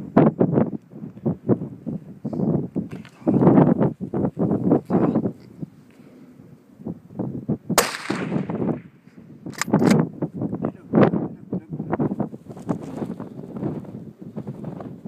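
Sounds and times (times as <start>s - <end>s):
wind buffeting microphone: 0.0s - 15.0s
rifle shot with echo: 7.8s - 10.0s
sharp clicks: 9.5s - 10.0s.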